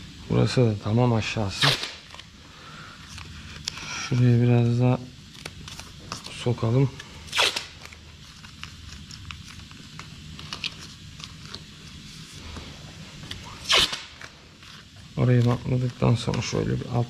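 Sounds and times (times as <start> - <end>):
steady low hum: 0.0 - 17.0
masking paper crinkling: 1.2 - 17.0
masking tape ripping off roll: 1.4 - 2.3, 7.3 - 11.9, 13.3 - 15.9.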